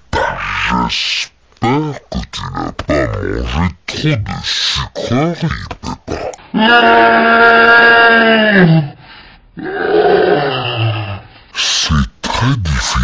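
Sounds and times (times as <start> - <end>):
rough drawn-out grunt: 1.6 - 6.4.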